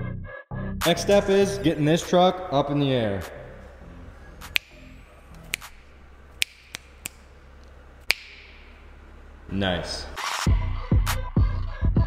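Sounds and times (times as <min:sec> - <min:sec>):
faint low hum: 0:00.9 - 0:10.2
finger snaps: 0:04.4 - 0:08.7.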